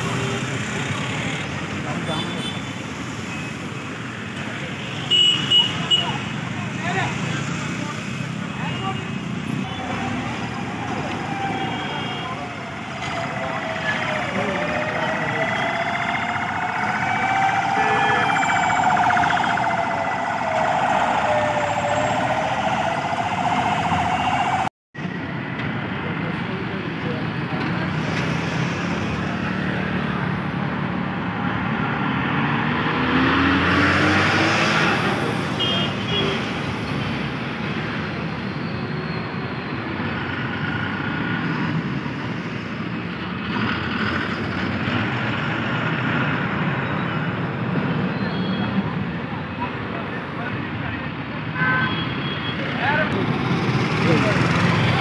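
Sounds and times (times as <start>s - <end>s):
road traffic: 0.0s - 55.0s
vehicle engines passing: 6.2s - 51.5s, 52.4s - 55.0s
siren wailing: 9.8s - 24.7s.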